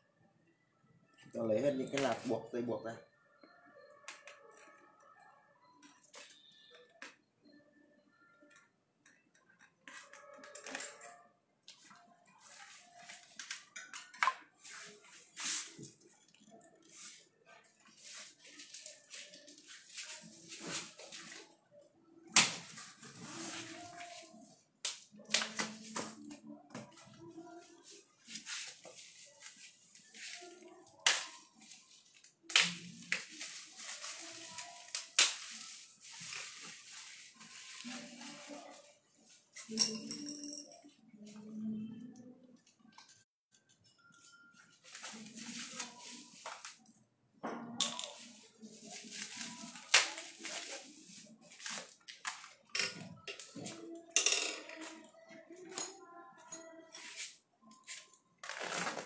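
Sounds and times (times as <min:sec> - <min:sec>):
packing rustling: 0:32.8 - 0:38.8.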